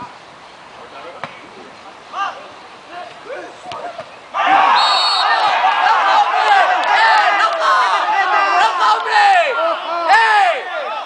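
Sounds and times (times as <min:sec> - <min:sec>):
crowd shouting and cheering: 0:04.3 - 0:11.0
referee's whistle blast: 0:04.5 - 0:05.6.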